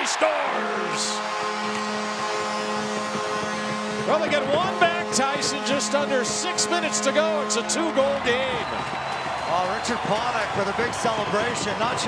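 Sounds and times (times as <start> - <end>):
arena goal horn chord: 0.0 - 8.8
crowd cheering: 0.0 - 12.0.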